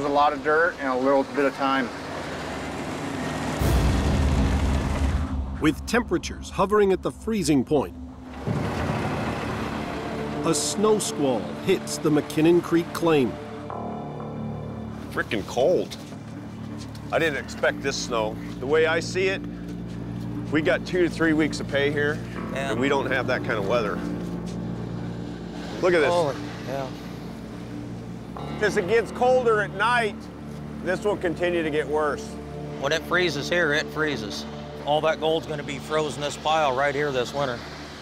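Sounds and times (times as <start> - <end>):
diesel machinery droning: 0.0 - 38.0
music with low tones: 0.0 - 38.0
steady rumbling: 2.7 - 12.4
man speaking: 5.6 - 8.0.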